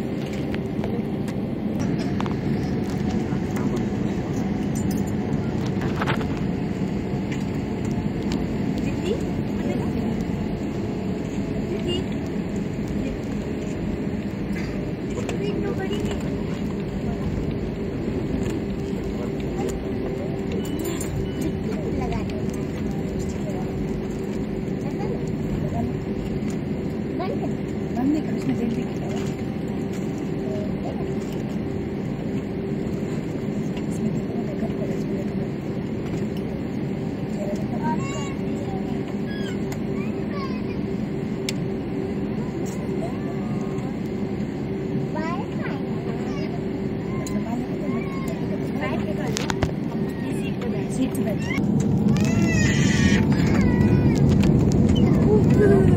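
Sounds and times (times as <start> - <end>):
jet engines in cabin: 0.0 - 55.9.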